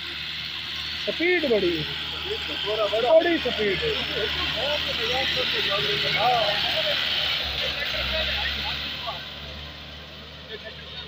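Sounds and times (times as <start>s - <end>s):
tractor diesel engine under load: 0.0s - 11.0s.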